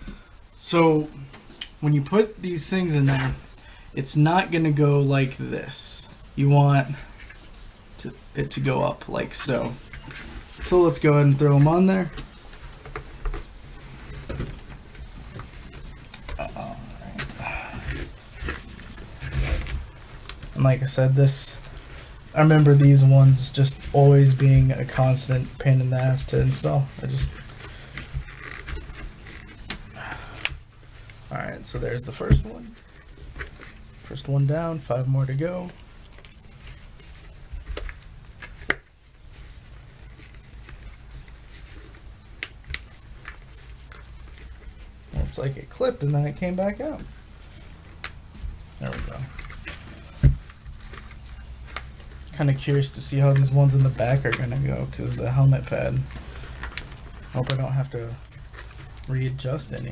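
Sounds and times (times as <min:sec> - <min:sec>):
handling and rubbing: 0:00.0 - 0:59.9
rustling: 0:00.0 - 0:59.9.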